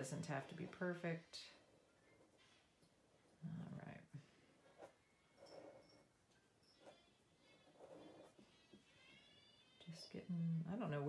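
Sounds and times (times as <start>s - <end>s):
faint ticks and squeaks: 5.2s - 8.3s
felt marker drawing on paper: 7.6s - 8.4s.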